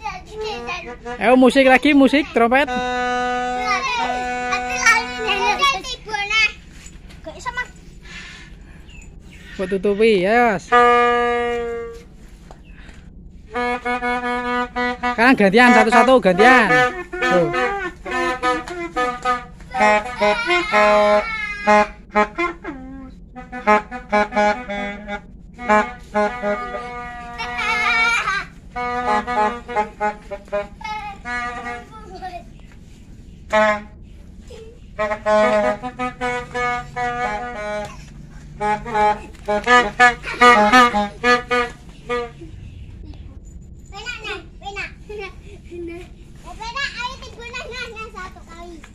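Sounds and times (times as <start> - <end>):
toy trumpets blowing reedy blasts: 2.6 - 5.7, 10.6 - 12.1, 13.5 - 30.6, 33.5 - 34.0, 35.0 - 42.6.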